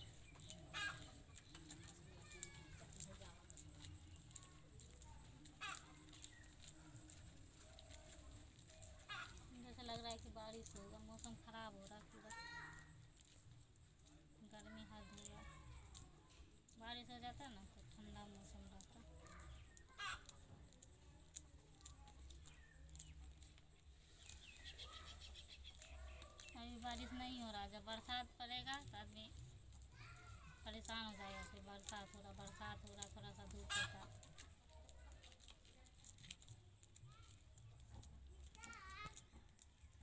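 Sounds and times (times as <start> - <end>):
maize kernels clicking and rustling: 0.0 - 40.0.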